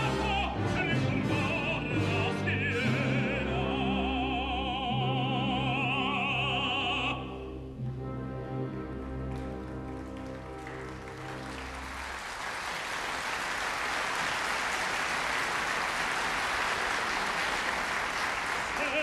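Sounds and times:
audience applause: 9.3s - 19.0s.

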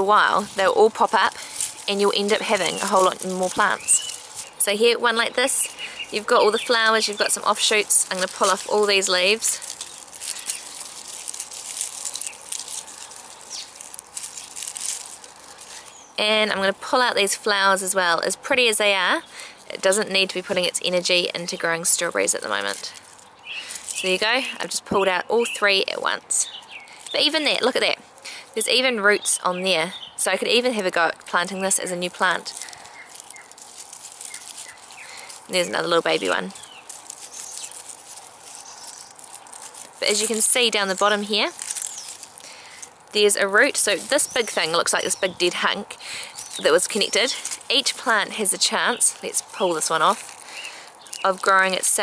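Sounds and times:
plant stems snapping: 0.0s - 18.0s, 22.2s - 25.6s, 30.3s - 52.0s
dry leaves rustling and crackling: 0.0s - 52.0s.

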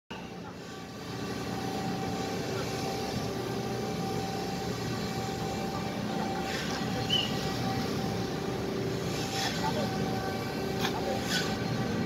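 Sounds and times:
ship's engines droning: 0.1s - 12.0s
thin steady whine: 0.1s - 12.0s.

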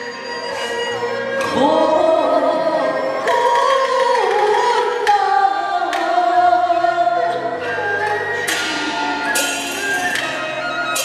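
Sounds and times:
instrumental accompaniment: 0.0s - 11.0s
opera singing with vibrato: 1.4s - 8.0s
sharp percussion strikes: 8.4s - 11.0s.

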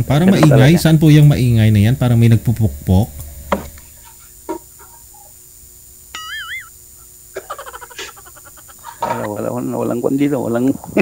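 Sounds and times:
short warbling chirp: 6.2s - 6.8s.

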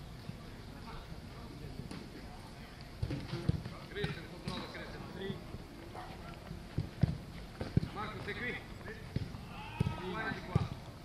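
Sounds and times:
distant players' voices: 0.0s - 11.0s
football kick thuds: 3.0s - 4.8s, 6.7s - 10.8s.

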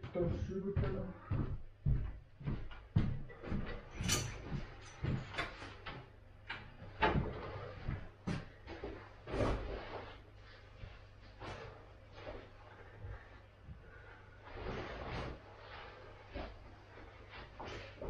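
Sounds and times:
footsteps on wooden floor: 0.0s - 6.2s, 6.8s - 9.9s
knocks and clatters of clothes: 0.0s - 18.0s.

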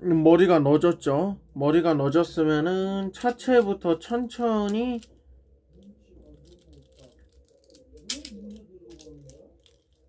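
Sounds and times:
plastic toy parts clicking: 4.4s - 10.0s.

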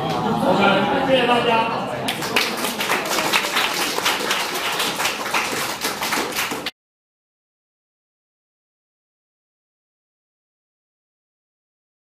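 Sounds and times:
audience applauding: 2.1s - 6.7s.

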